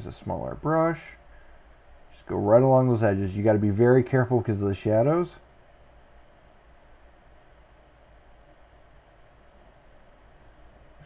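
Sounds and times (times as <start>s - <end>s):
faint steady hiss: 0.0s - 11.0s
low hum: 0.0s - 11.0s.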